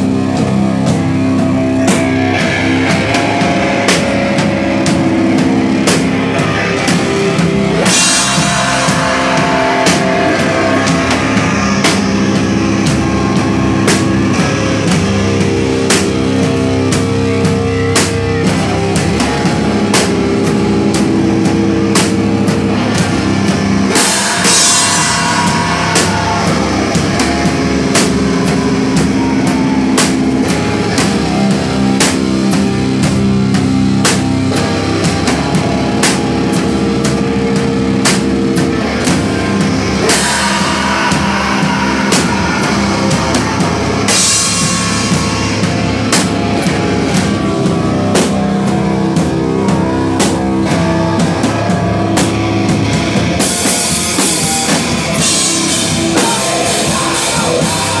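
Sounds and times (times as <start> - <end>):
crashing cymbals: 0.0 - 58.0
drum kit beating: 0.0 - 58.0
rock band playing loud: 0.0 - 58.0.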